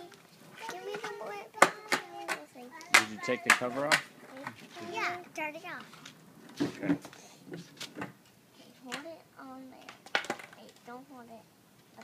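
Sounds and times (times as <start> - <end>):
young child's voice: 0.0 - 5.9, 8.6 - 11.4.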